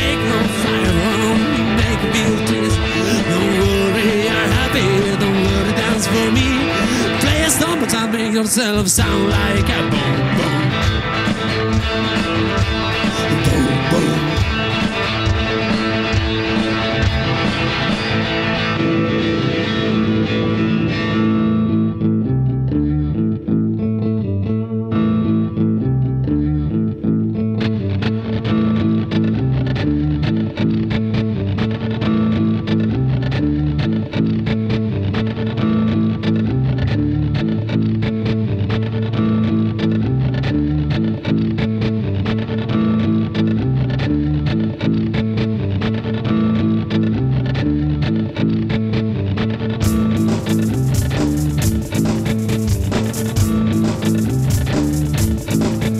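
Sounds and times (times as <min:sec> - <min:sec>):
low guitar riff: 0:00.0 - 0:55.9
ticking percussion beat: 0:49.8 - 0:55.9.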